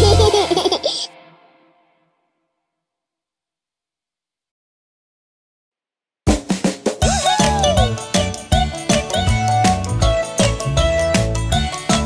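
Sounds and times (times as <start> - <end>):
cartoon baby giggling: 0.0 - 1.1
song closing music: 7.0 - 12.0.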